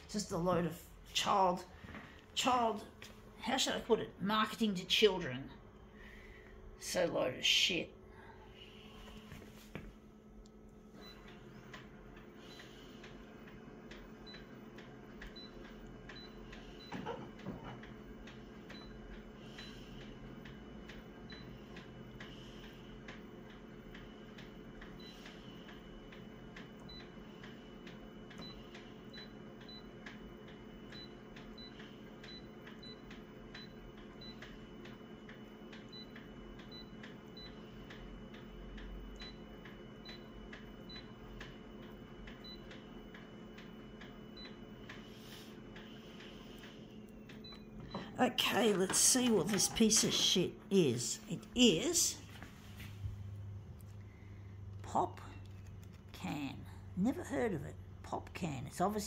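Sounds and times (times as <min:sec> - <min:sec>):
copier idle hum: 0:00.0 - 0:59.0.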